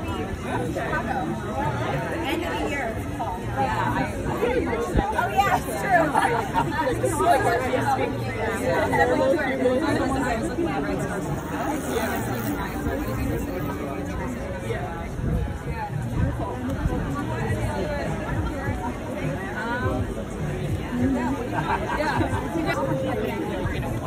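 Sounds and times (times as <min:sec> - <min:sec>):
crowd babble: 0:00.0 - 0:24.0.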